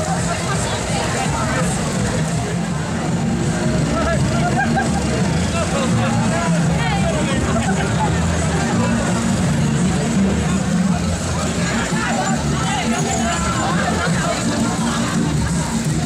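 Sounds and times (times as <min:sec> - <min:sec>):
crowd chattering and calling out: 0:00.0 - 0:16.0
vehicle engine running: 0:00.0 - 0:16.0.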